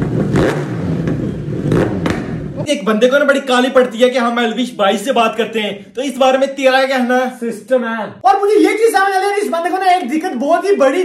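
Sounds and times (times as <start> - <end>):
motorcycle engine revving: 0.0 - 2.7.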